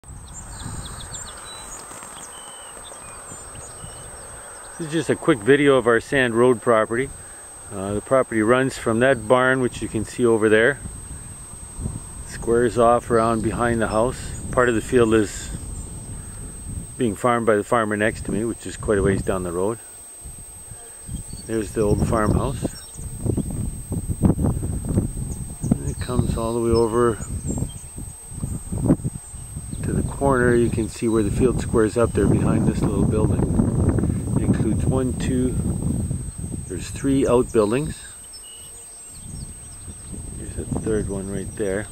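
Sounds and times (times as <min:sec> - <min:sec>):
small birds chirping: 0:00.0 - 0:41.9
wind rumble on microphone: 0:00.0 - 0:41.9
footsteps through grass: 0:01.6 - 0:03.0.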